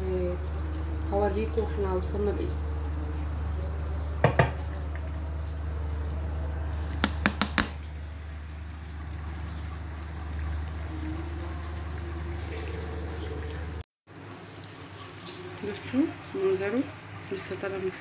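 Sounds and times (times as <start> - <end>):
low hum: 0.0 - 13.8.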